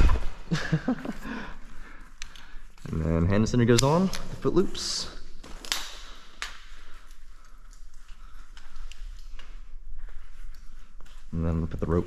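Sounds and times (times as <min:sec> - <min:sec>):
climbing gear clicking: 0:01.6 - 0:11.3.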